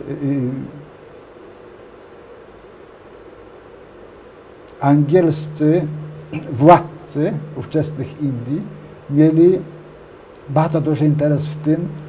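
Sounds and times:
faint recording hiss: 0.0 - 12.0.

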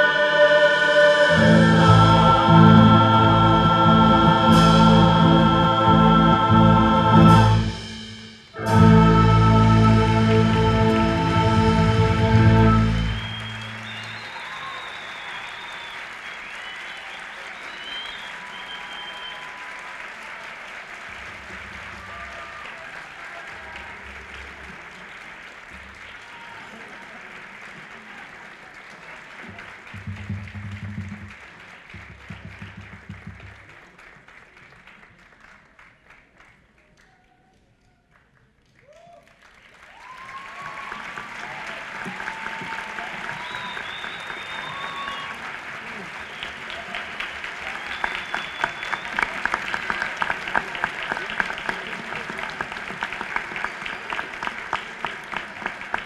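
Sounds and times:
orchestra chord: 0.0 - 13.8
audience applause and cheering: 0.0 - 56.0.

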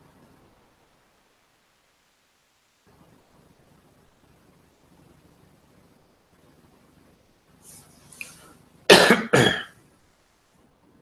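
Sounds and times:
person coughing: 8.9 - 9.7.

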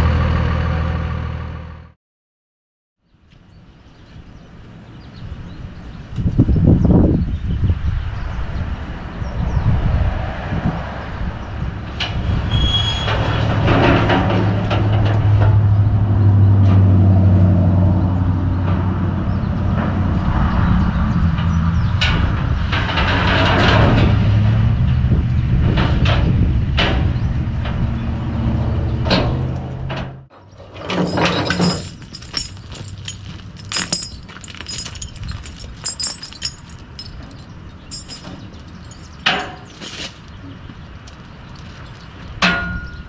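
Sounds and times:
metal clanks and knocks: 13.1 - 15.8, 21.3 - 25.0, 25.6 - 27.8, 29.0 - 43.0.

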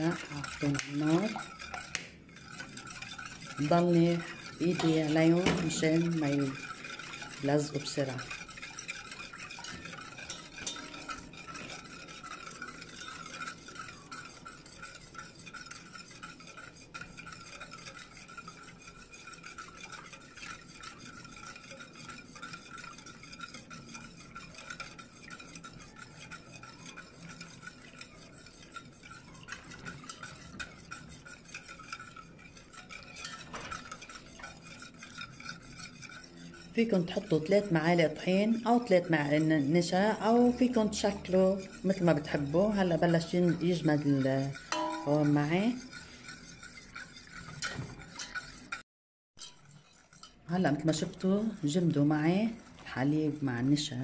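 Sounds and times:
whisk scraping in metal pot: 0.0 - 48.8, 49.4 - 54.0.

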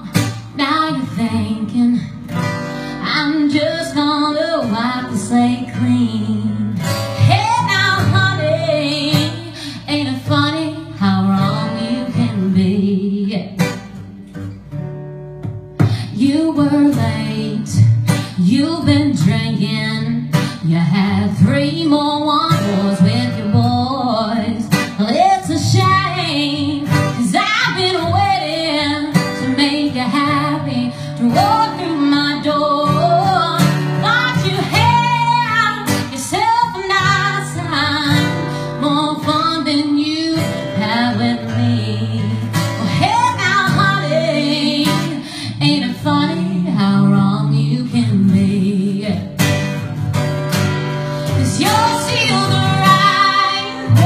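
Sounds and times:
strummed guitar: 0.0 - 54.0
woman singing country song: 0.0 - 54.0.

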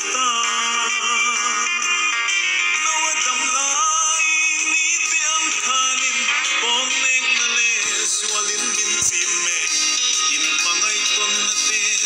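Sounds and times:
man singing into a microphone: 0.0 - 2.0, 2.8 - 12.0
musical accompaniment: 0.0 - 12.0.

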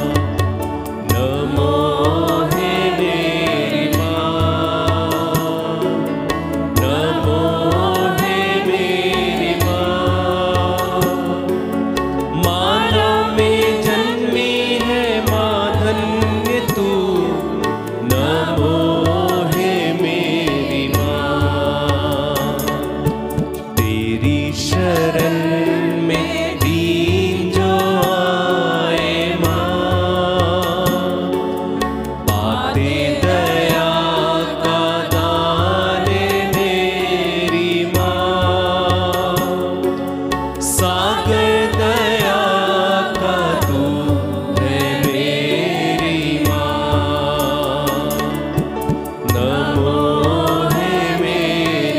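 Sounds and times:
women singing devotional song: 0.0 - 31.4, 32.3 - 51.9
instrumental accompaniment: 0.0 - 51.9.

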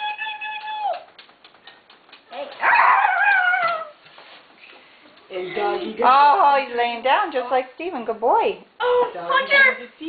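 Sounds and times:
person imitating dog whines: 2.6 - 4.0.

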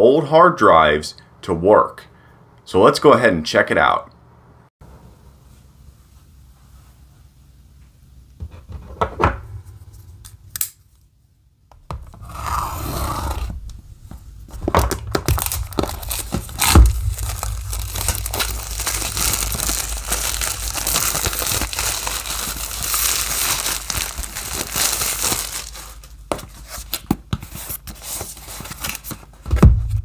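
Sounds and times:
loud knock: 9.1 - 10.3, 13.6 - 19.0, 29.5 - 30.0
plastic wrap tearing and crinkling: 14.5 - 29.4
knife slitting plastic wrap: 14.7 - 29.2.

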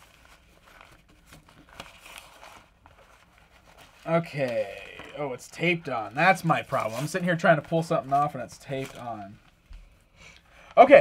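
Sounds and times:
sharp paper crackles: 0.0 - 9.6
paper rustling and crinkling: 0.0 - 10.0.

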